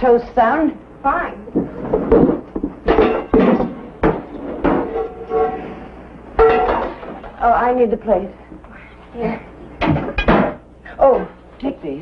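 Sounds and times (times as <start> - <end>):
dishes clattering: 1.7 - 5.7, 6.4 - 7.4, 9.8 - 10.6.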